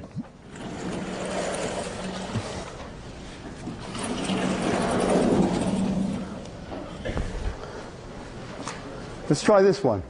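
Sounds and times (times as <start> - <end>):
chalkboard panel rolling: 0.5 - 7.4.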